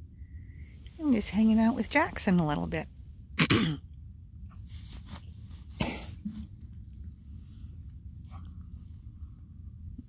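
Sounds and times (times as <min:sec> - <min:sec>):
person coughing: 0:03.4 - 0:03.8, 0:05.8 - 0:06.3.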